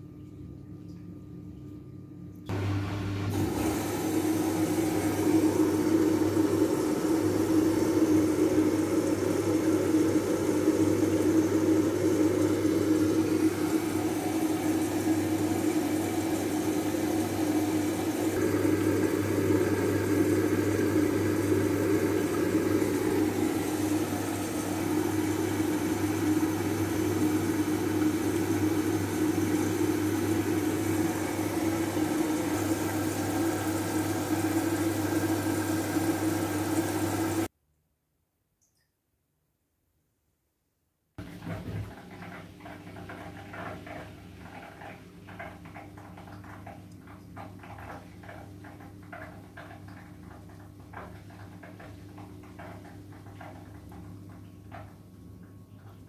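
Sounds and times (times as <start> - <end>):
washing machine motor and drum hum: 0.0 - 37.5, 41.2 - 56.0.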